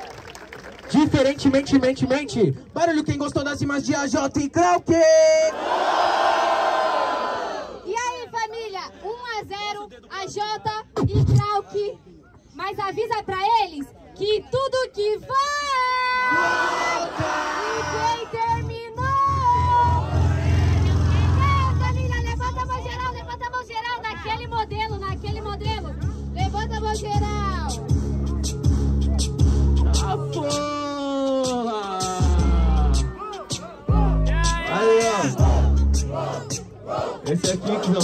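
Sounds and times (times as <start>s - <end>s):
crowd shouting: 5.5s - 7.8s, 16.1s - 18.5s, 19.4s - 21.7s, 32.3s - 38.0s
woman rapping into microphone: 7.9s - 12.0s, 12.6s - 20.2s, 20.8s - 27.9s
deep bass beat: 24.4s - 38.0s.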